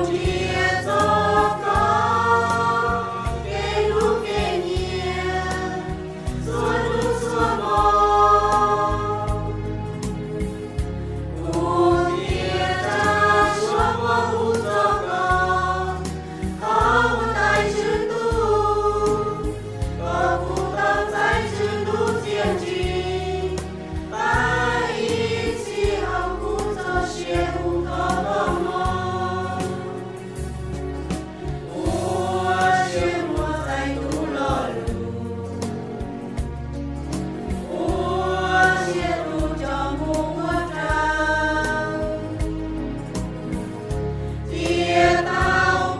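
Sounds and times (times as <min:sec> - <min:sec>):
choir singing: 0:00.0 - 0:09.6, 0:11.4 - 0:30.2, 0:31.6 - 0:36.0, 0:37.5 - 0:42.6, 0:44.4 - 0:45.9.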